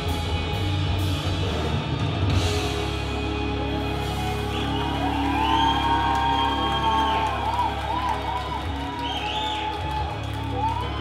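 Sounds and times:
rock band sustained chord: 0:00.0 - 0:05.1
audience whooping and cheering: 0:03.7 - 0:11.0.

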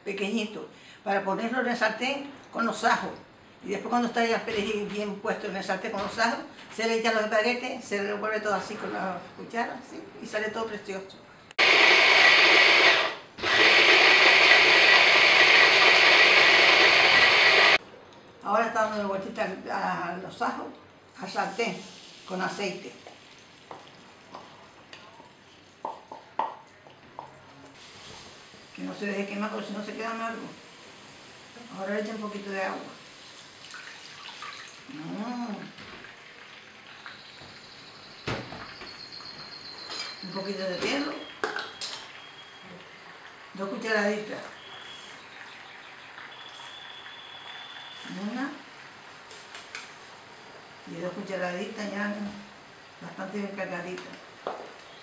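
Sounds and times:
electric hand blender whining: 0:11.6 - 0:17.8
broth sizzling in a frying pan: 0:27.8 - 0:34.9, 0:41.4 - 0:49.4.

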